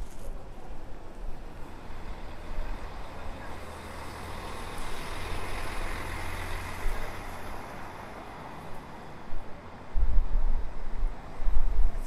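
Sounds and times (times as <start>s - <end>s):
city street noise: 0.0s - 12.0s
large vehicle engine rumble: 0.0s - 12.0s.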